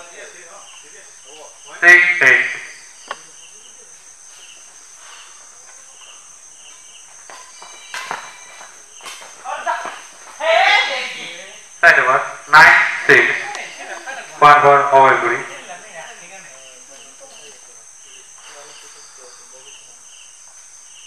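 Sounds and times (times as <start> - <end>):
faint cricket chirping: 0.0 - 21.0
man shouting: 9.5 - 11.5.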